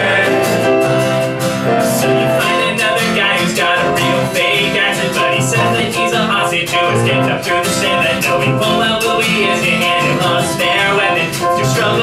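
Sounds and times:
acoustic guitar strumming: 0.0 - 12.0
person singing: 0.0 - 12.0.

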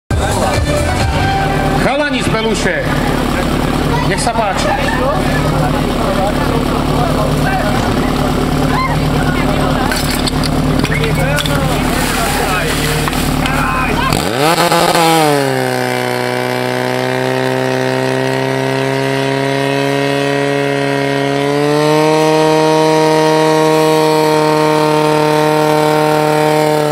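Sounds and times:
pump engine running: 0.1 - 26.9
people shouting: 7.4 - 9.7, 10.9 - 14.5.

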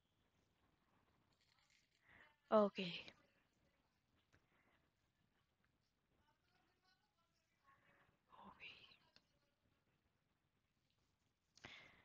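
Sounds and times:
faint whispered voice: 1.5 - 9.7.

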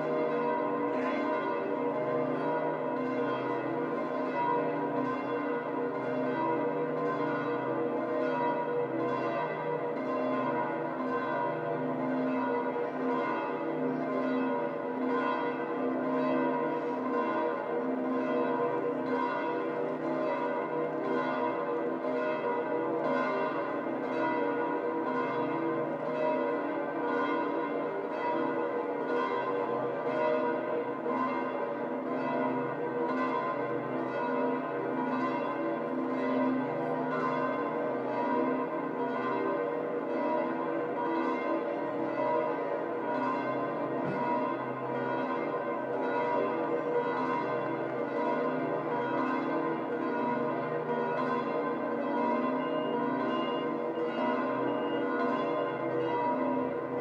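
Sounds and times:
church bells pealing: 0.0 - 57.0.

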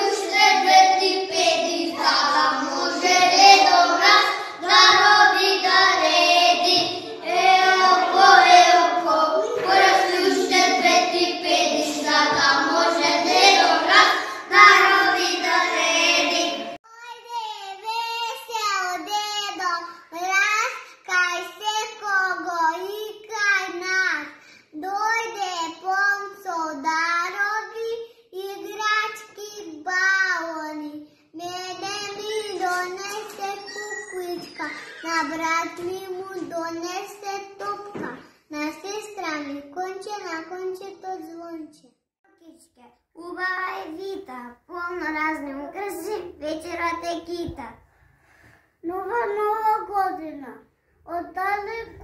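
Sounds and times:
young children singing together: 0.0 - 16.8, 31.4 - 38.3.

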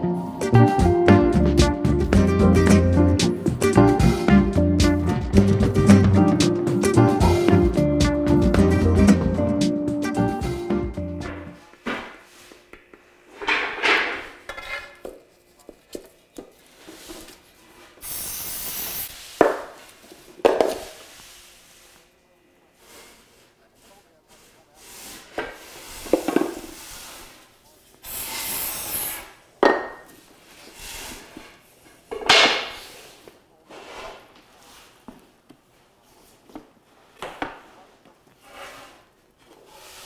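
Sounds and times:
guitar music: 0.0 - 11.6
aerosol spray can hissing: 18.0 - 19.3, 28.0 - 29.3.

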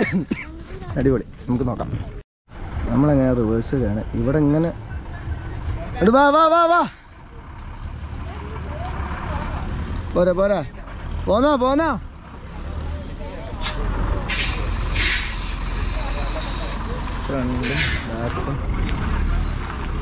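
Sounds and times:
diesel engine rumbling: 0.0 - 20.0
air brake hisses: 13.6 - 16.8.

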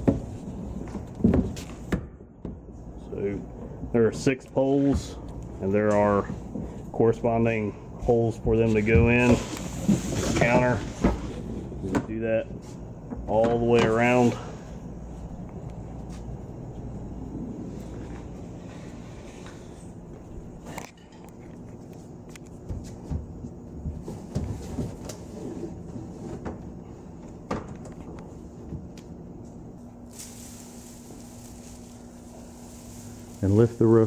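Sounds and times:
low background hum: 0.0 - 34.0.

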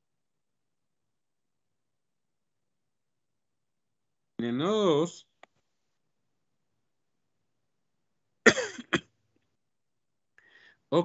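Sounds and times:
man coughing: 8.4 - 9.1.

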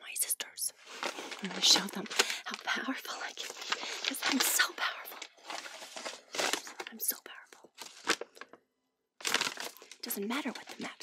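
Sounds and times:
paper map crumpling: 0.8 - 8.6, 9.2 - 11.0.

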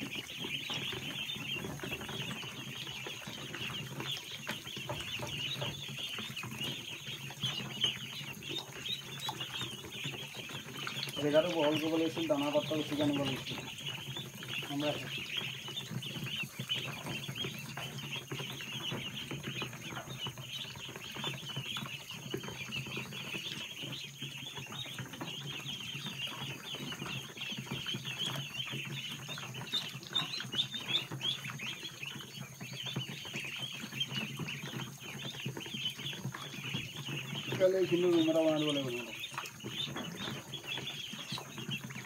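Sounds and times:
ducklings peeping: 0.0 - 42.0.

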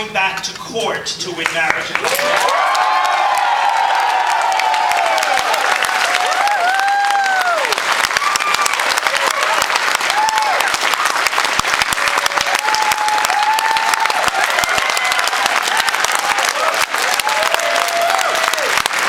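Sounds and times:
crowd applauding: 1.7 - 19.0
voices shouting cheers: 2.0 - 10.8, 12.2 - 18.8.

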